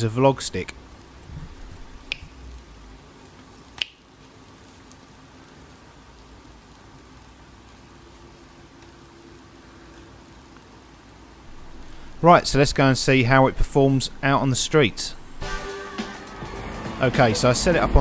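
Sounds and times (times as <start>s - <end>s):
low room hum: 0.0s - 18.0s.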